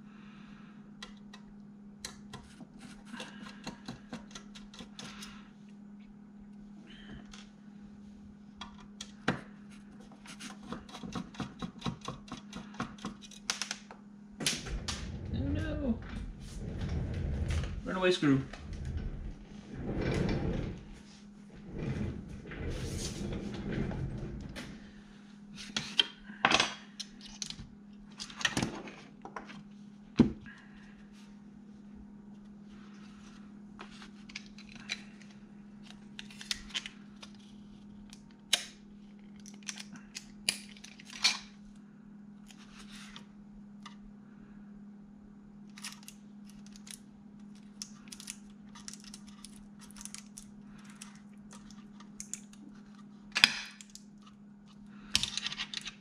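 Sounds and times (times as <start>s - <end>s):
steady low hum: 0.0s - 56.0s.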